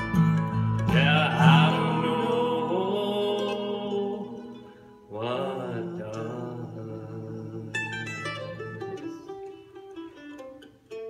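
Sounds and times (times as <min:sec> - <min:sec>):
bluegrass string band chords: 0:00.0 - 0:11.0.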